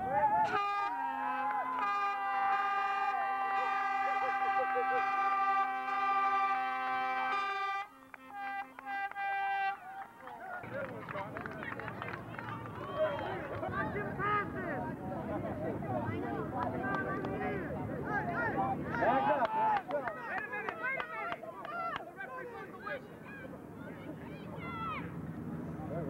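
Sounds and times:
crowd cheering and shouting: 0:00.0 - 0:04.0, 0:12.3 - 0:14.6, 0:17.4 - 0:25.2
voices shouting: 0:00.0 - 0:10.9, 0:12.3 - 0:15.0, 0:15.9 - 0:25.4
horn blast: 0:00.4 - 0:10.8.

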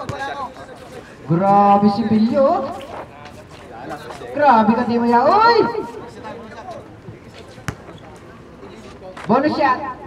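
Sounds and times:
faint chatter: 0:02.5 - 0:10.0.

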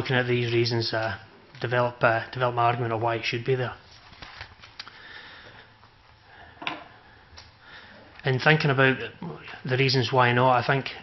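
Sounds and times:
man breathing through nose: 0:04.8 - 0:08.1.

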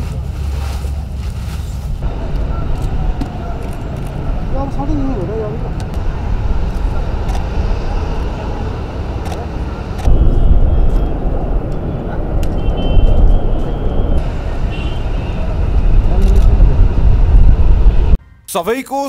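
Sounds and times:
heavy low rumble: 0:00.0 - 0:18.2.

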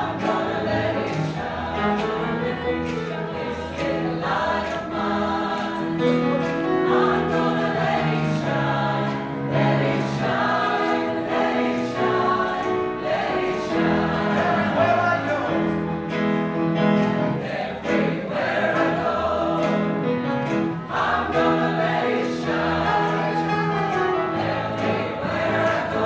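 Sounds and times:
choir singing in parts: 0:00.0 - 0:26.0
piano accompaniment: 0:00.0 - 0:26.0.

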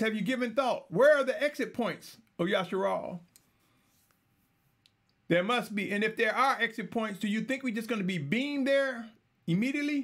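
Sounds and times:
man narrating: 0:00.0 - 0:03.2, 0:05.3 - 0:10.0.

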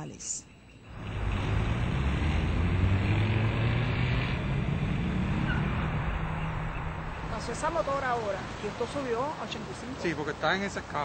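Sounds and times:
loud road traffic: 0:00.8 - 0:11.0.

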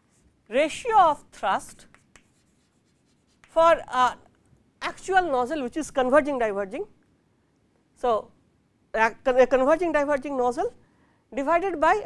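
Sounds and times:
chalk scratching on blackboard: 0:01.7 - 0:03.7.

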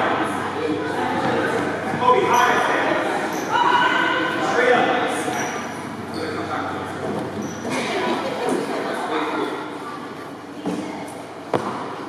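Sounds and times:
voices echoing in a gymnasium: 0:00.0 - 0:12.0.

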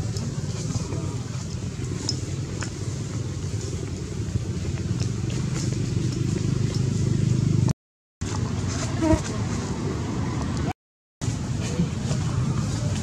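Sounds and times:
engine hum: 0:00.0 - 0:13.0.

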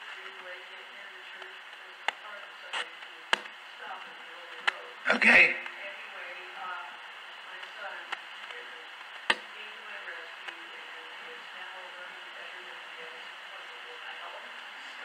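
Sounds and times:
steady hiss: 0:00.0 - 0:15.0
person speaking faintly: 0:03.8 - 0:06.8.

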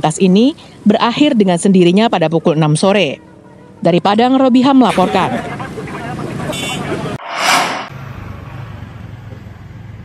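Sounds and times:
traffic engine hum: 0:04.8 - 0:10.0
vehicle passing close: 0:07.2 - 0:08.8.

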